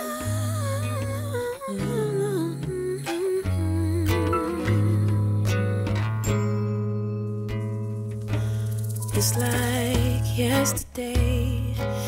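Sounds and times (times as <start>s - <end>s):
hummed vocal melody: 0.0s - 6.3s, 8.4s - 12.0s
held bass notes: 0.0s - 12.0s.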